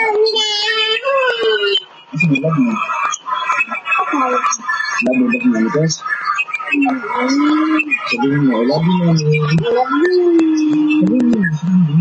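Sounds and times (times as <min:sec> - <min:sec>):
high-pitched voice singing held notes: 0:06.7 - 0:12.0.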